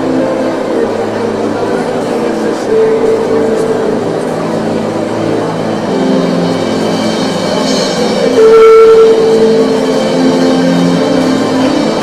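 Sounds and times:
worship music with drums: 0:01.4 - 0:12.0.

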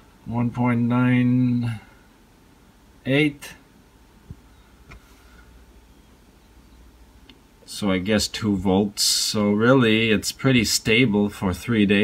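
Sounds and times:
steady low hum: 0:00.0 - 0:12.0
faint click: 0:07.2 - 0:07.4.

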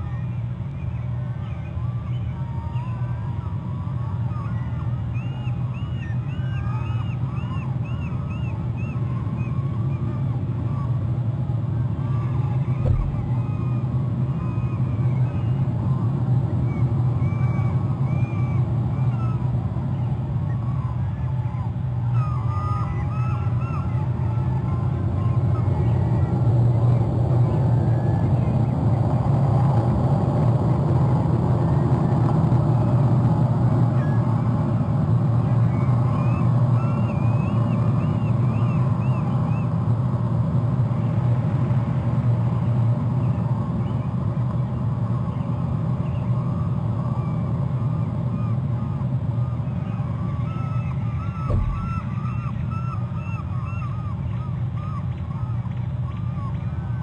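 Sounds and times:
low engine drone: 0:00.0 - 0:57.0
high chirping bird calls: 0:12.1 - 0:13.8, 0:49.7 - 0:56.9.

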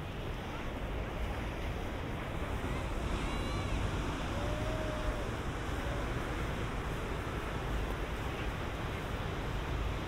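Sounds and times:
sea surf washing on beach: 0:00.0 - 0:10.0
wind rumbling on microphone: 0:00.0 - 0:10.0.

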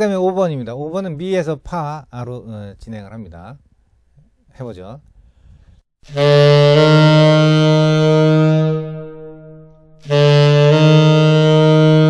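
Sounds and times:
tenor saxophone playing: 0:06.0 - 0:12.0.

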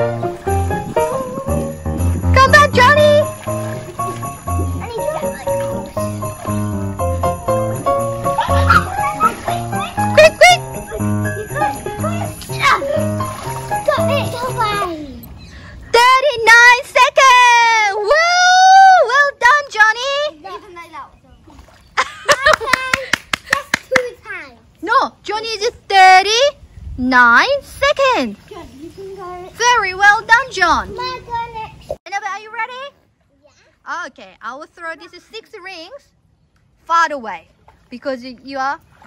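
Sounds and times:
upbeat music with jingle bells: 0:00.4 - 0:14.8
hands clapping quickly: 0:22.3 - 0:24.1.

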